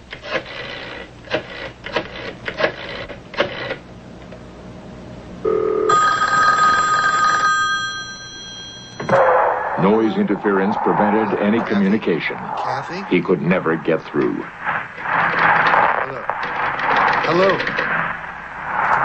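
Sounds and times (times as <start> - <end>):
telephone ringing: 5.4 - 9.2
burst of loud static noise: 9.2 - 19.0.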